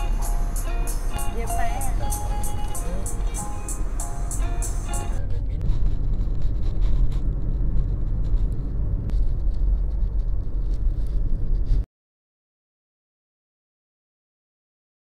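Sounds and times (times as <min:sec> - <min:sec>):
music with steady beat: 0:00.0 - 0:05.2
car driving rumble from inside: 0:00.0 - 0:11.8.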